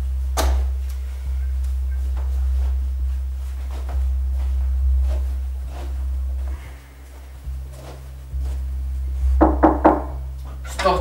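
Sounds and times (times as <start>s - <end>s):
deep bass drone: 0.0s - 11.0s
knocks: 9.4s - 10.2s.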